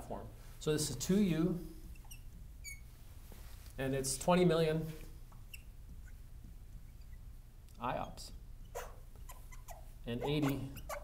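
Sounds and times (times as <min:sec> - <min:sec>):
low room hum: 0:00.0 - 0:11.0
marker squeaking on glass: 0:01.8 - 0:03.0, 0:05.3 - 0:11.0.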